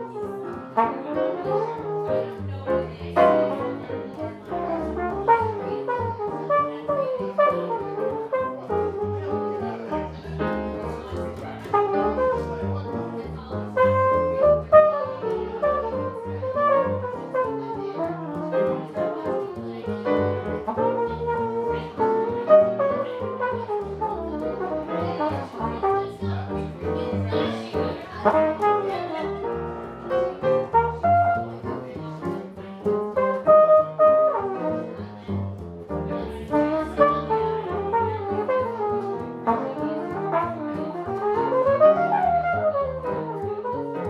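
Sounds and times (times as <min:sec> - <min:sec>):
flugelhorn melody: 0:00.0 - 0:02.6, 0:03.2 - 0:10.4, 0:11.7 - 0:19.5, 0:20.4 - 0:26.5, 0:28.2 - 0:31.6, 0:33.1 - 0:34.9, 0:36.5 - 0:44.0
grand piano: 0:00.0 - 0:44.0
upright double bass: 0:00.0 - 0:44.0.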